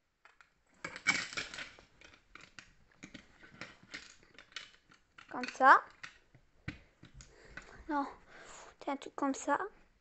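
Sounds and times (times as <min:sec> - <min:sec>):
plastic bricks rattling and clicking: 0:00.2 - 0:08.0.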